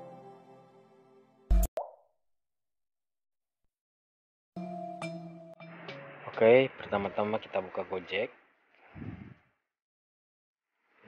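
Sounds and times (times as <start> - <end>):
soft ambient music: 0.0 - 1.7, 4.6 - 8.0.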